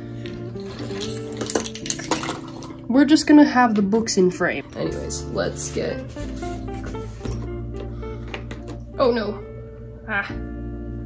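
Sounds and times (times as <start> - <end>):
acoustic guitar music: 0.0 - 10.7.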